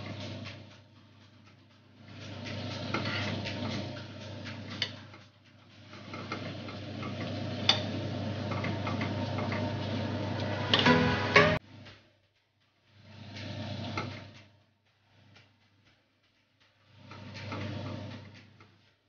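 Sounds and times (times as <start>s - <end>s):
utensils scraping a pan: 2.5s - 3.9s.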